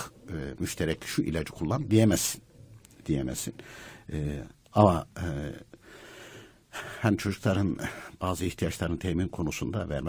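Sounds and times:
soft in-breath: 3.6 - 4.1, 5.8 - 7.0.

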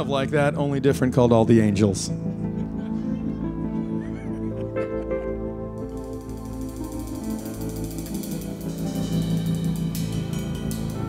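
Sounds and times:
fast even ticking: 5.8 - 11.0.

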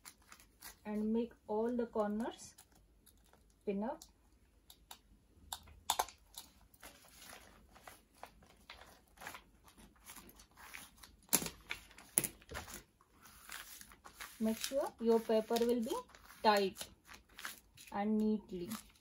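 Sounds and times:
plastic sheet crinkling: 6.4 - 19.0.

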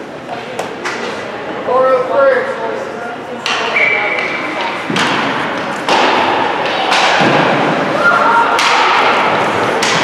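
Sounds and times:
stick and puck knocks: 3.4 - 7.7, 8.6 - 10.0.

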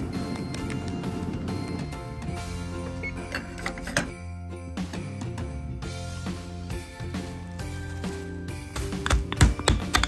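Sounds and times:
background music: 0.0 - 10.0
oven keypad beeps: 3.0 - 3.6.

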